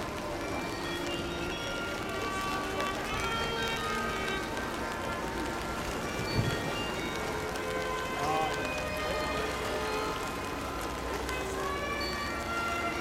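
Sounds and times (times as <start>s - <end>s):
rain pattering: 0.0s - 13.0s.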